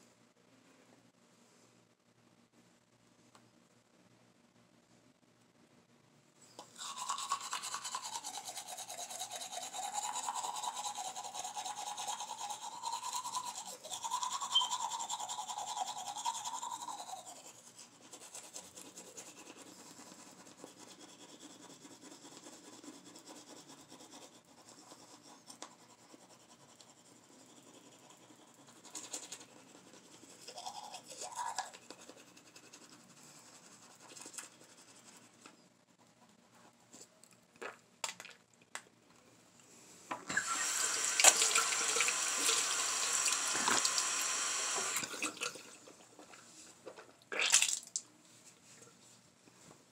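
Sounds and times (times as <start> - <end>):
toothbrush scrubbing: 6.7 - 35.4
electric toothbrush buzzing: 6.8 - 17.5, 40.3 - 45.1.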